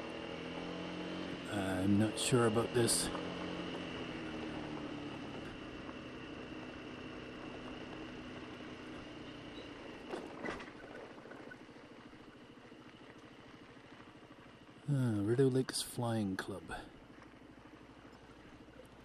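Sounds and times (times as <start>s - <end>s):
scooter engine humming: 0.0s - 19.0s.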